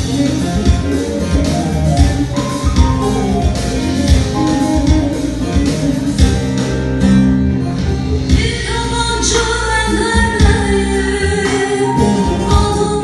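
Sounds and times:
instrumental backing with bass: 0.0s - 13.0s
person singing: 8.3s - 13.0s.

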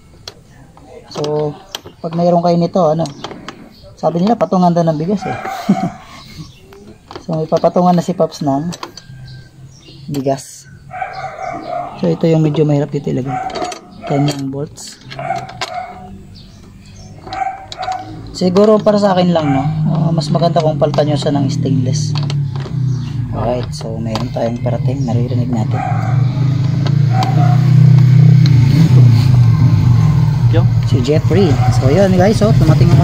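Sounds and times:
bird calling: 0.0s - 33.0s
vehicle engine passing by: 10.7s - 14.4s, 15.0s - 33.0s.

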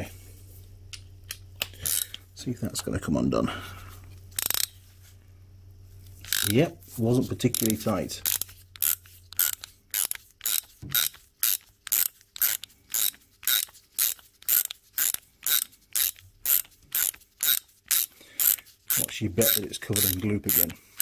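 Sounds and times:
ratchet wrench clicking: 1.6s - 2.2s, 4.4s - 4.8s, 6.2s - 21.0s.

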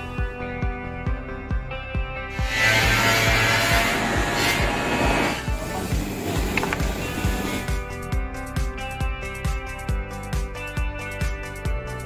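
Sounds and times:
music with steady beat: 0.0s - 12.0s.

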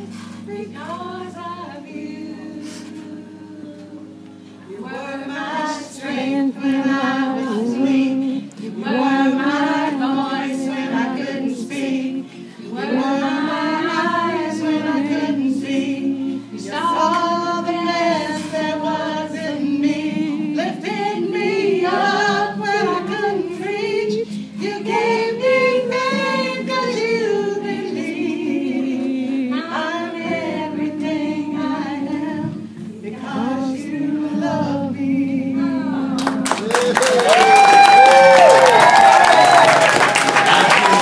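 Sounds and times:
woman singing a slow ballad: 0.0s - 36.5s
audience clapping and cheering: 36.2s - 41.0s.

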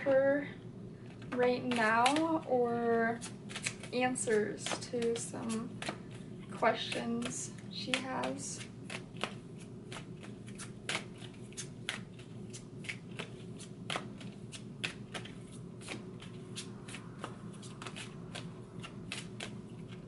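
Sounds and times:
cards being shuffled: 1.1s - 2.4s, 3.1s - 20.0s.

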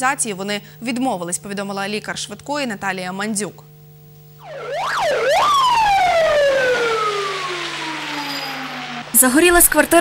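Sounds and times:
fire engine siren: 4.4s - 10.0s.

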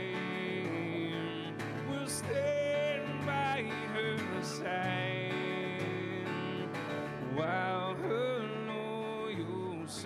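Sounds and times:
acoustic guitar strumming: 0.0s - 10.0s
man singing: 0.0s - 10.0s.

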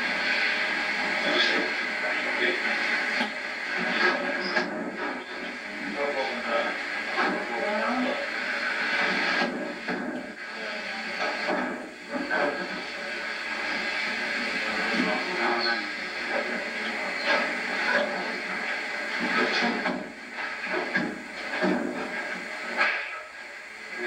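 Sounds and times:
indistinct talking: 0.0s - 23.0s
steady tape hiss: 0.0s - 24.0s.

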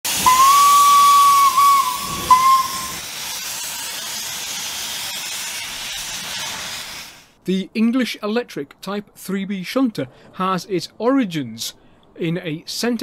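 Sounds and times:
steam hissing: 0.0s - 7.4s
steam locomotive whistle: 0.1s - 3.1s.

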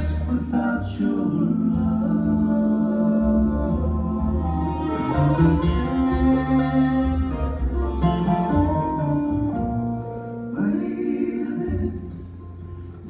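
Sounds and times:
bluegrass band playing: 0.0s - 13.0s
upright bass line: 0.0s - 13.0s.

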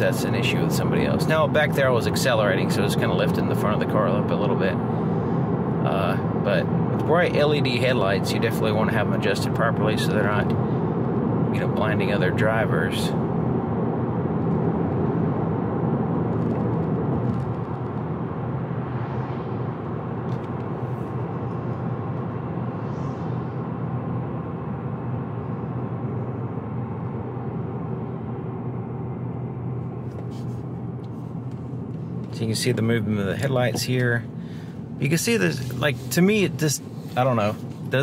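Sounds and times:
car engine: 0.0s - 38.0s
tyre and road drone: 0.0s - 38.0s.

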